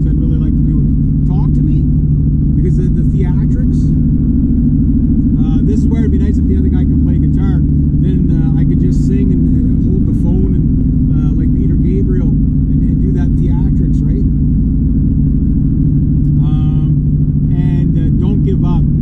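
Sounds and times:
car engine and tyre drone: 0.0s - 19.0s
person speaking: 5.4s - 14.3s, 16.3s - 17.0s.

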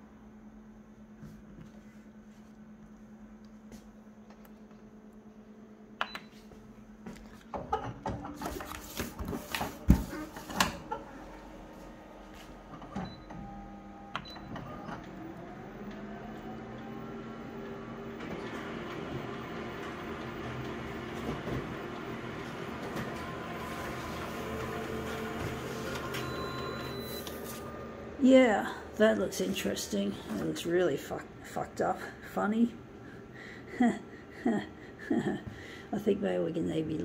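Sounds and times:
photocopier whirring: 6.2s - 31.9s.

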